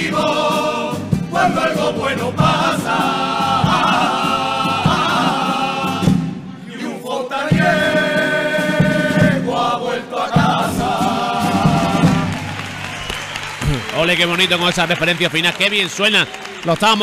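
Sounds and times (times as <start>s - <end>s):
male chorus singing in harmony: 0.0s - 12.4s
drum beats: 7.5s - 17.0s.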